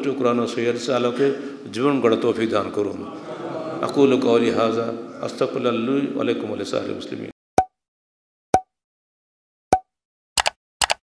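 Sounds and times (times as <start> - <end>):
quick double clicks: 10.4 - 11.0.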